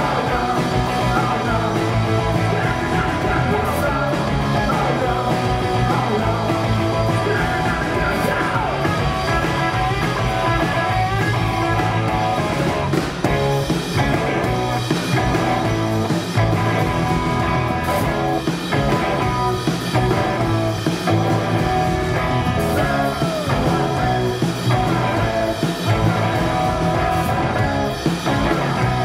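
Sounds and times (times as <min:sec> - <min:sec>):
drum kit: 0:00.0 - 0:29.0
electric guitar: 0:00.0 - 0:29.0.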